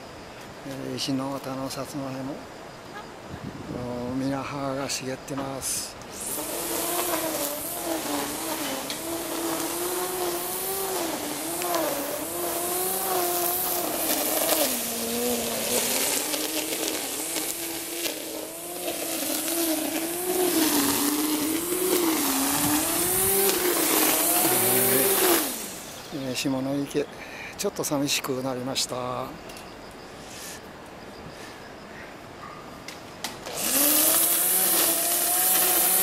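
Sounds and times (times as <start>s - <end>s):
steady high hiss: 0.0s - 36.0s
brush cutter engine running: 6.0s - 26.4s, 33.4s - 36.0s.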